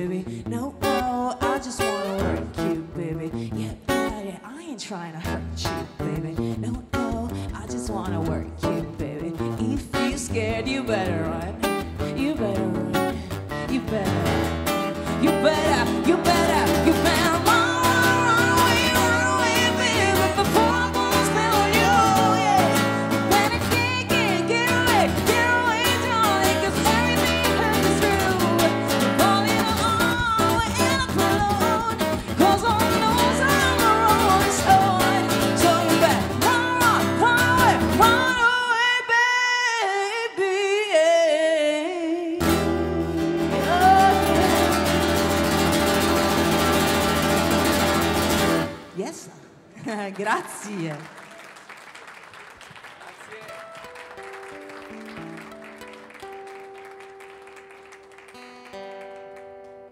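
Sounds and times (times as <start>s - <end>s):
woman singing lead vocal: 0.0s - 47.0s
acoustic guitar strummed chords: 8.2s - 38.5s, 42.4s - 49.0s
man singing along: 42.4s - 45.4s.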